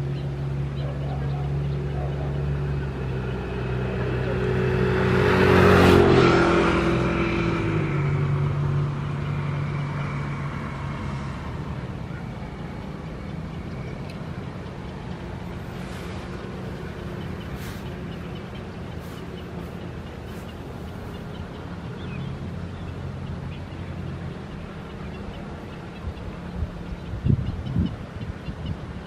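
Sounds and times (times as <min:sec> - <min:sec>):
motor vehicle passing by: 0:00.0 - 0:29.0
outdoor background noise: 0:00.0 - 0:29.0.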